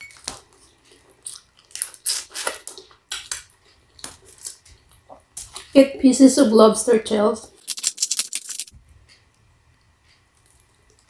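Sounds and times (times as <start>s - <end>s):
lobster shell crackling: 1.1s - 4.7s, 7.6s - 8.7s.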